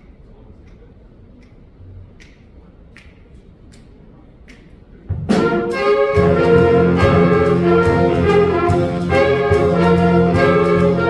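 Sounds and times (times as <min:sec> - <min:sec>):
finger snaps: 0:00.0 - 0:04.9.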